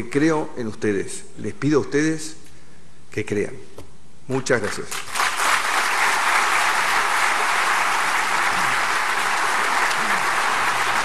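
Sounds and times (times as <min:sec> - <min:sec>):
large audience applauding: 0:04.9 - 0:11.0.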